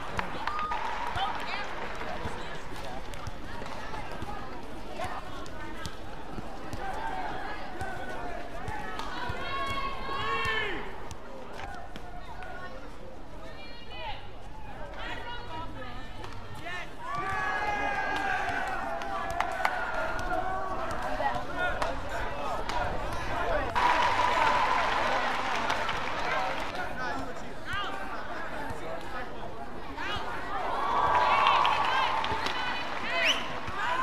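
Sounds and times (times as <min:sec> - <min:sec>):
spectators' voices: 0:00.0 - 0:34.0
crowd cheering and applause: 0:23.7 - 0:26.8, 0:30.6 - 0:34.0.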